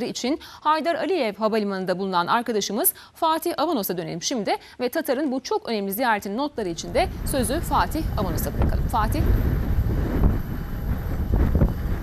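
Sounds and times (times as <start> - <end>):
low rumble: 6.6 - 12.0
wind on microphone: 6.6 - 12.0.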